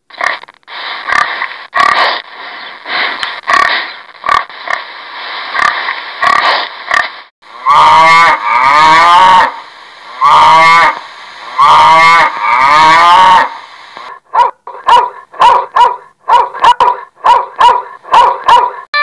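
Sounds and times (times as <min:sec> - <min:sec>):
cow mooing: 0:07.6 - 0:09.6, 0:11.6 - 0:13.5
dog barking: 0:14.2 - 0:18.9.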